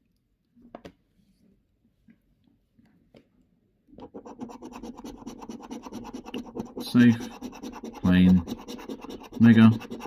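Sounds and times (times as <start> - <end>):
coin scraping scratchcard: 4.2 - 10.0.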